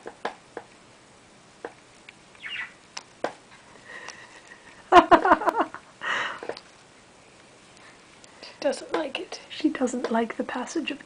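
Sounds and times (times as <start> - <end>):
person's voice: 8.4 - 11.0.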